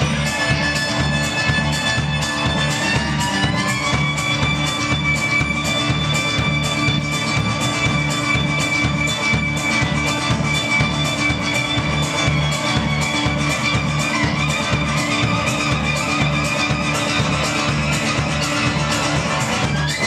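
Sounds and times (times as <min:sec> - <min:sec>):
acoustic guitar: 0:00.0 - 0:20.0
banjo: 0:00.0 - 0:20.0
upright bass: 0:00.0 - 0:20.0.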